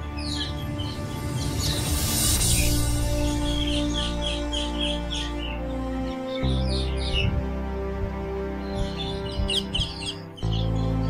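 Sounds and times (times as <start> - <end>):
high bird chirps: 0.0 - 7.3, 8.7 - 11.0
slow sustained chords: 0.0 - 11.0.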